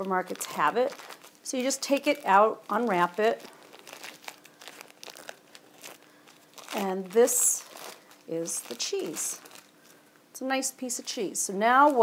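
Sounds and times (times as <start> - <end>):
paper wrapper crinkling: 0.0 - 10.1, 10.9 - 12.0.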